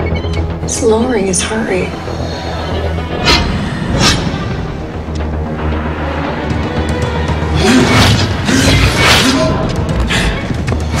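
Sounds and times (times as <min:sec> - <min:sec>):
tense film score drone: 0:00.0 - 0:11.0.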